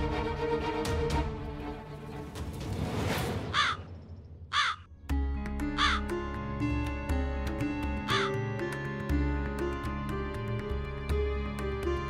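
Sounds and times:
background music with held notes: 0.0 - 2.7, 4.9 - 12.0
crow cawing: 3.5 - 3.8, 4.5 - 4.9, 5.8 - 6.1, 8.1 - 8.4.

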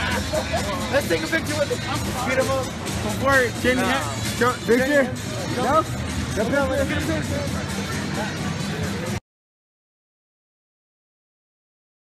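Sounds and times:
men's voices and laughter: 0.0 - 5.8
busy crowd din: 0.0 - 9.2.

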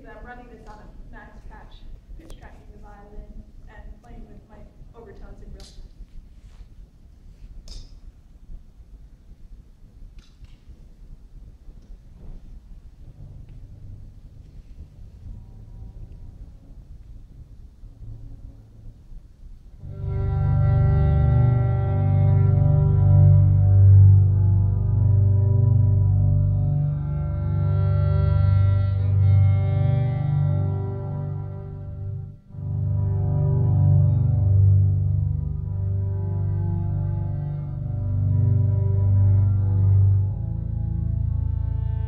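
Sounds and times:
deep low drone: 11.3 - 42.0
sustained electronic chord: 19.8 - 42.0.

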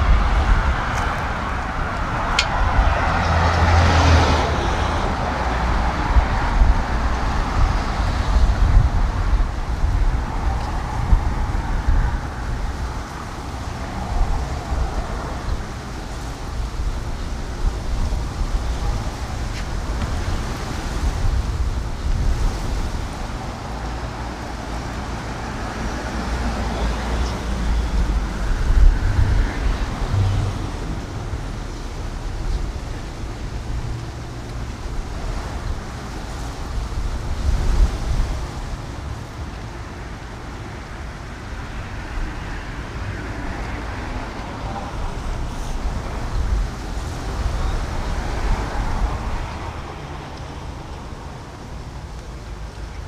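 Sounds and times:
road traffic: 0.0 - 53.0
wind rumbling on microphone: 0.0 - 53.0.

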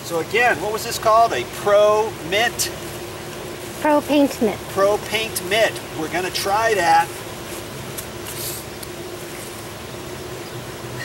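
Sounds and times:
steady mechanical hum: 0.0 - 11.0.

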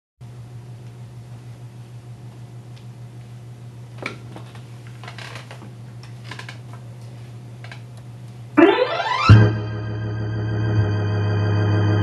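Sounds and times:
low electrical hum: 0.2 - 11.8.

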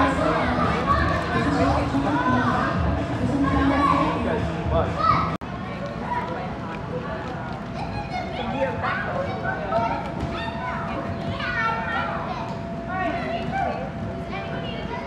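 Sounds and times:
children shouting and calling: 7.8 - 12.6.

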